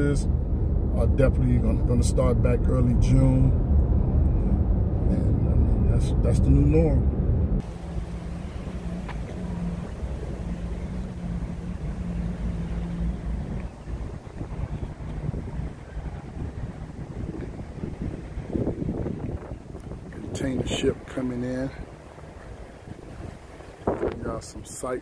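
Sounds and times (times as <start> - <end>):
faint low hum: 0.0 - 18.5
wind on microphone: 0.0 - 25.0.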